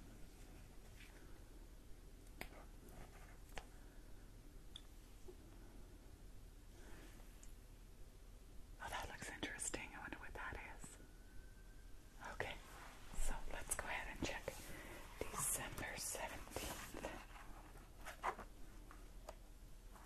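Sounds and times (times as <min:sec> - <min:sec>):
woman whispering: 0:08.8 - 0:11.0, 0:12.1 - 0:17.4.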